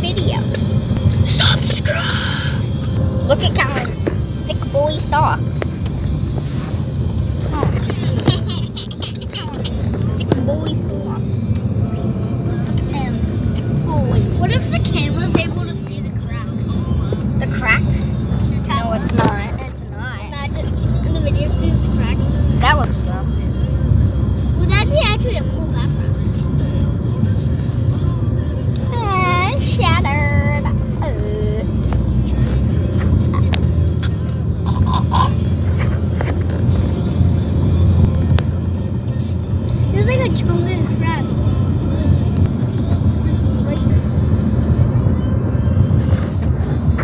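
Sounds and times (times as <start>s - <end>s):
car cabin rumble: 0.0s - 47.0s.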